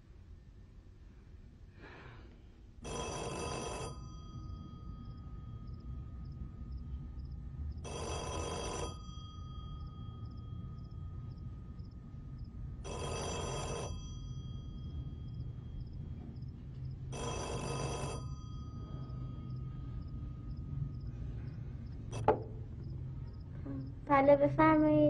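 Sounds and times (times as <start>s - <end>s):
rotary telephone ringing: 2.8s - 21.1s.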